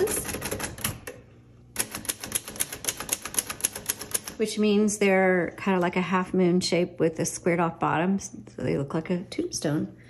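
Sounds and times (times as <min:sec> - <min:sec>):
manual typewriter keystrokes: 0:00.0 - 0:01.2, 0:01.8 - 0:04.4.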